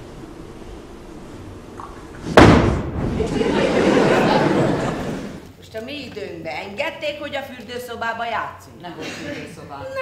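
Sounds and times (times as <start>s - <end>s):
loud impact ringing in hall: 2.2s - 3.4s.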